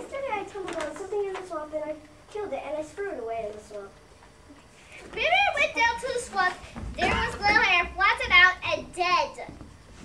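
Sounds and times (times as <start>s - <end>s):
child speaking loudly: 0.0s - 4.0s, 5.0s - 9.6s.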